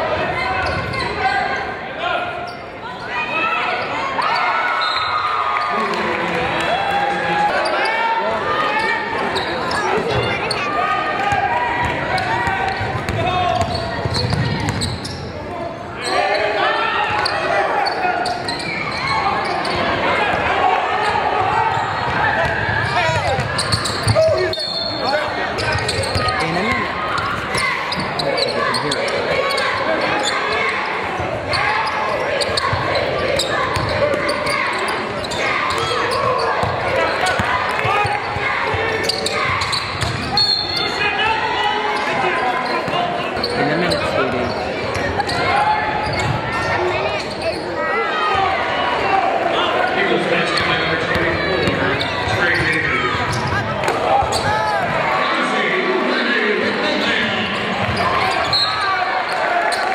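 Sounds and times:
spectators shouting in a hall: 0.0 - 59.9.

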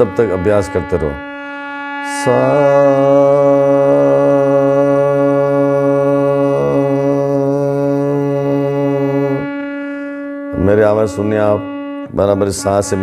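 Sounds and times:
harmonium held note: 0.0 - 13.0
man singing a long note: 0.0 - 13.0.

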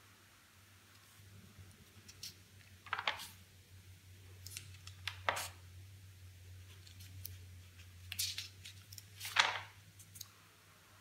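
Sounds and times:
notebook pages rustling: 6.6 - 10.1.

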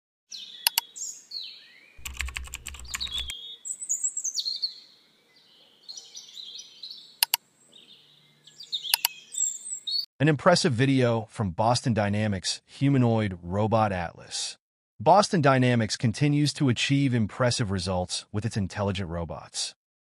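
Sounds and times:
sharp clicks: 2.0 - 3.3, 7.2 - 7.4
chirping bird-like calls: 2.8 - 4.8, 5.4 - 10.0.

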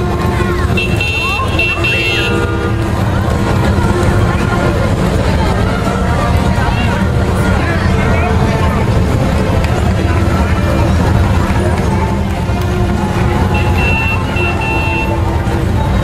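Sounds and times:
motorcycle engines rumbling: 0.0 - 16.0
people talking: 0.0 - 16.0.

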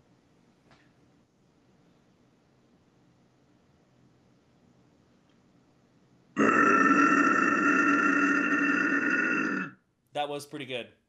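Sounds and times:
man growling: 6.4 - 9.8.

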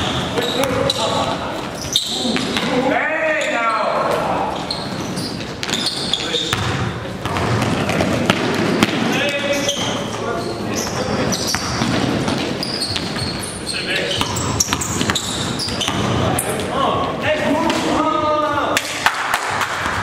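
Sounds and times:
sneakers squeaking: 0.0 - 19.0
players' voices and shouts: 0.4 - 4.7, 15.7 - 19.0
basketball bouncing on gym floor: 5.4 - 10.0, 11.3 - 13.4, 14.1 - 16.7.

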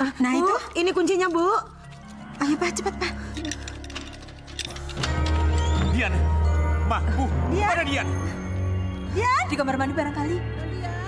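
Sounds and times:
low sustained background music: 0.0 - 11.0
key clicking in door lock: 3.3 - 5.6.

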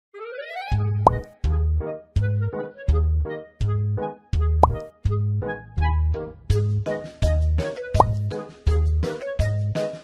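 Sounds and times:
playful children's music: 0.2 - 10.0
upward plop sound effect: 1.0 - 1.3, 4.6 - 4.9, 8.0 - 8.3.

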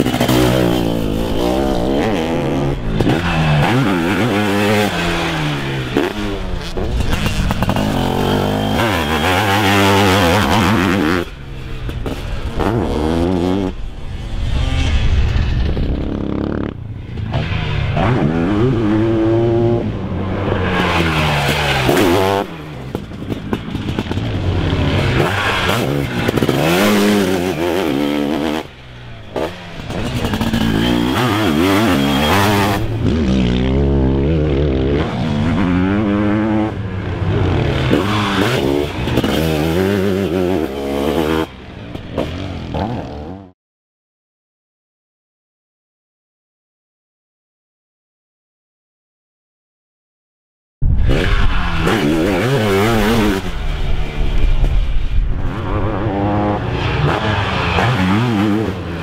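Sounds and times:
motocross engine revving: 0.0 - 15.0, 15.6 - 43.5, 51.0 - 54.7, 55.3 - 59.0.

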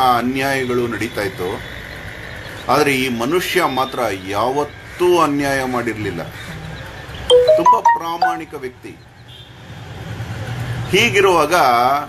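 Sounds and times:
faint high tone: 7.3 - 8.5.

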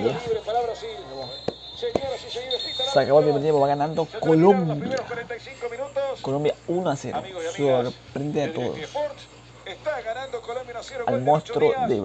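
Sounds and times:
referee's whistle: 0.0 - 4.5
commentator talking: 0.0 - 12.0.

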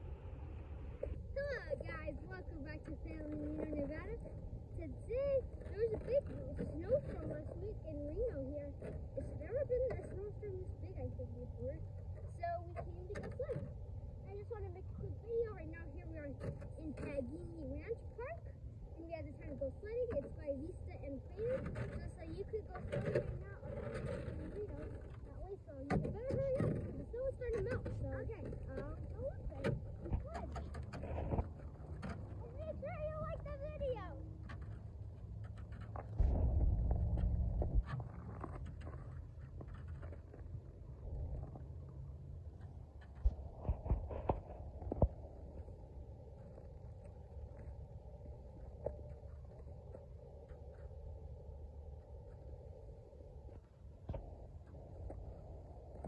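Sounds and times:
low rumble: 0.0 - 56.0.

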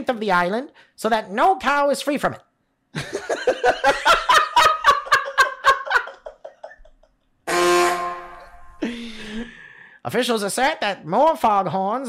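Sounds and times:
man laughing hard: 3.0 - 7.1
loud horn-like tone: 7.4 - 8.8.

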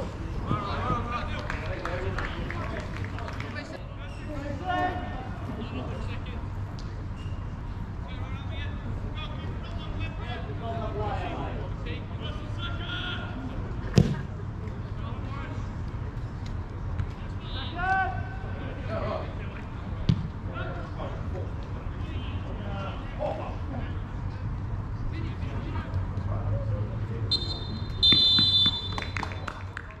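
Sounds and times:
ball kicked with a thud: 13.9 - 14.3, 20.1 - 20.4
referee's whistle: 27.3 - 29.5.

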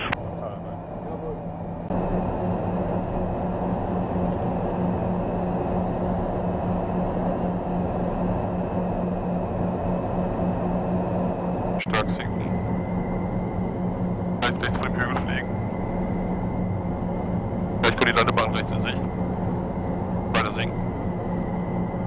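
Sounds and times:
turboprop cabin drone: 0.0 - 22.0.

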